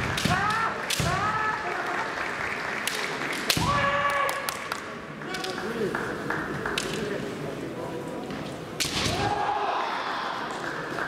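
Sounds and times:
bamboo swords clacking: 0.0 - 1.5, 8.7 - 9.4
fencers shouting: 0.0 - 1.8, 9.0 - 10.5.

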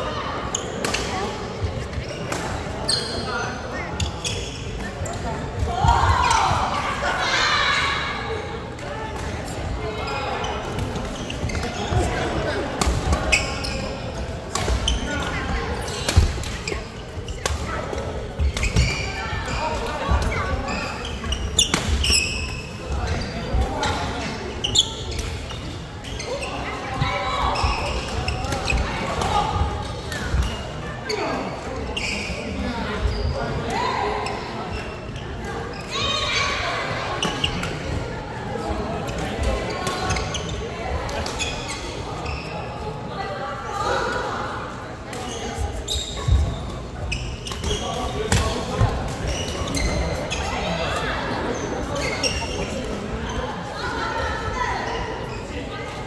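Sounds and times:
murmur of voices: 0.0 - 56.0.

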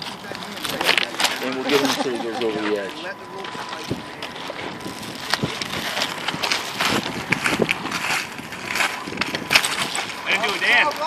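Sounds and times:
footsteps crunching on gravel: 0.0 - 11.0
outdoor background noise: 0.0 - 11.0.

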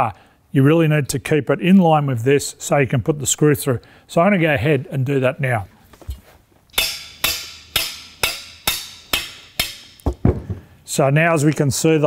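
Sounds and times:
hammer tapping with metallic ring: 6.8 - 10.0.

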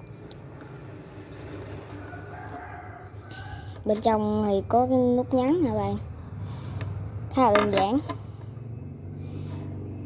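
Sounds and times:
distant traffic hum: 0.0 - 10.0.

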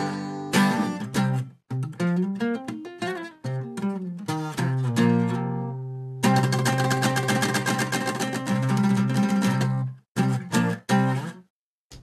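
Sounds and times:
acoustic guitar strumming: 0.0 - 11.4.

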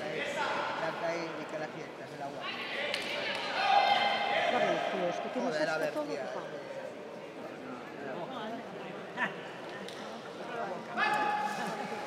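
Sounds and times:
people shouting: 3.5 - 4.7.

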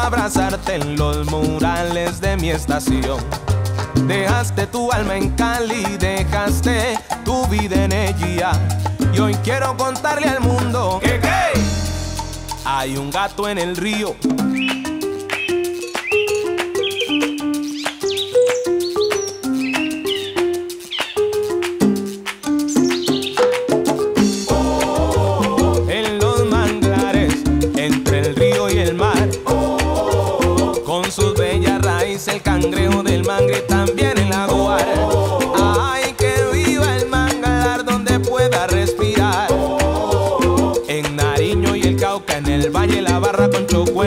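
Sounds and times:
hand percussion: 0.0 - 44.0
salsa band melody: 0.0 - 44.0
high gliding chirps: 14.1 - 26.8.

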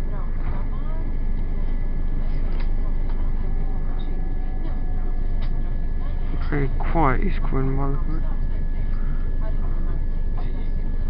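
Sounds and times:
high whine: 0.0 - 11.0
train rumble: 0.0 - 11.0.

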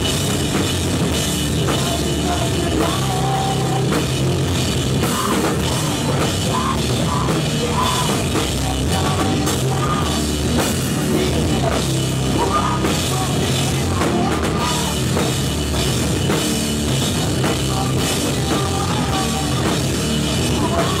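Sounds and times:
drum kit: 0.0 - 21.0
electric guitar: 0.0 - 21.0
person singing through pa: 1.6 - 15.4, 16.9 - 21.0.

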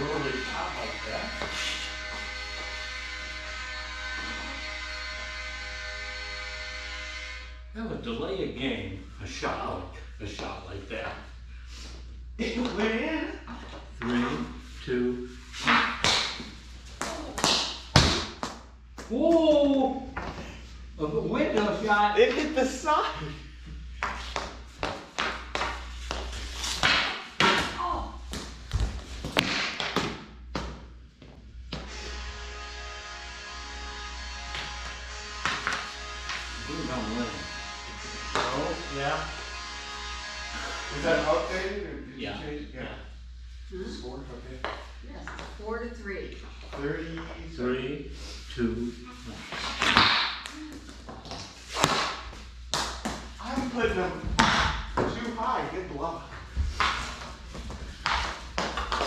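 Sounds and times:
music with a voice: 0.0 - 5.0, 36.5 - 39.5
hockey sticks clacking ball: 49.6 - 50.5, 56.7 - 57.3, 57.9 - 59.0.

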